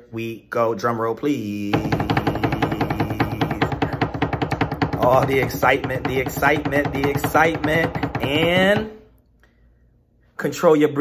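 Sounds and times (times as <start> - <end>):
drum roll: 1.7 - 8.9.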